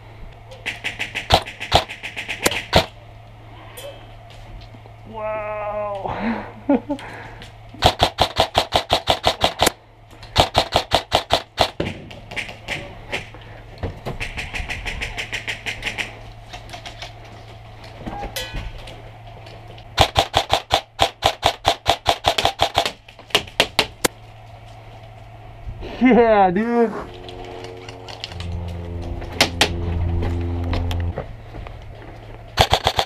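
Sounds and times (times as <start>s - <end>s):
airsoft rifle firing bursts: 0.6s - 2.9s, 7.8s - 9.7s, 10.4s - 11.8s, 20.0s - 23.0s, 32.6s - 33.0s.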